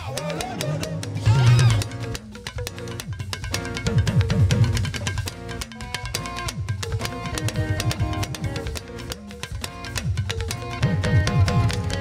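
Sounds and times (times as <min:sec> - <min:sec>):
band backing with sustained notes: 0:00.0 - 0:12.0.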